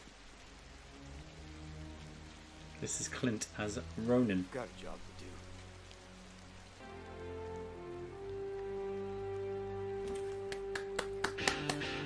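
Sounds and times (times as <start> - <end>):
faint rain: 0.0 - 12.0
music of sustained chords: 0.0 - 12.0.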